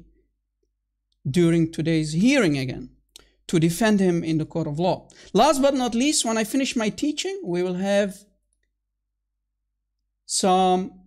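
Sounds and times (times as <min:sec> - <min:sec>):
person speaking: 0:01.2 - 0:08.4.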